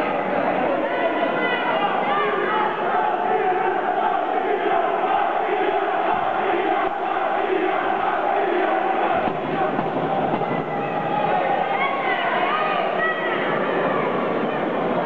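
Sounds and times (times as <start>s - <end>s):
crowd talking and calling out: 0.0s - 15.0s.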